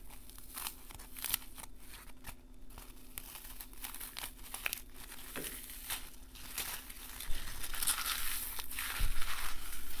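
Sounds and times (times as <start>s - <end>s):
floral foam crackling and crumbling: 0.0s - 10.0s.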